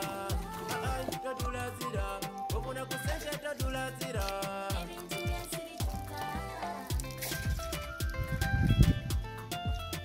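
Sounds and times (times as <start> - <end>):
background music with drum beat: 0.0 - 10.0.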